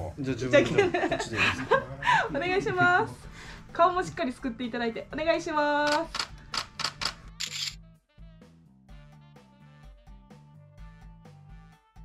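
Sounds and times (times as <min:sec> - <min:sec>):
background music with low notes: 0:00.0 - 0:12.0
camera shutter clicks: 0:05.9 - 0:07.8.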